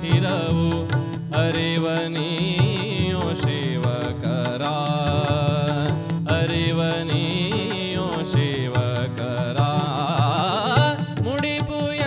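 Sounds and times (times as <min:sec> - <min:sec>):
harmonium melody: 0:00.0 - 0:12.0
tabla beat: 0:00.0 - 0:12.0.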